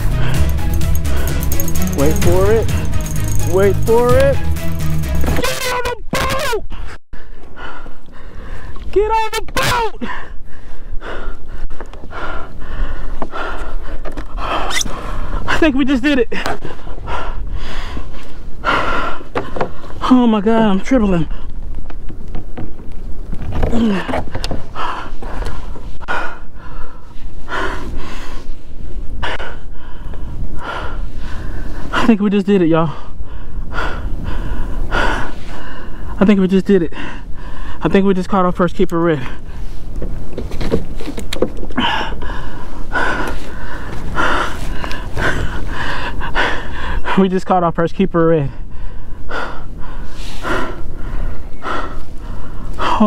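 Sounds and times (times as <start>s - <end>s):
man breathing hard: 0.0s - 3.5s, 6.7s - 8.8s, 10.0s - 15.6s, 16.4s - 20.0s, 23.8s - 32.0s, 32.9s - 36.2s, 36.9s - 37.8s, 41.7s - 47.2s, 48.5s - 53.0s.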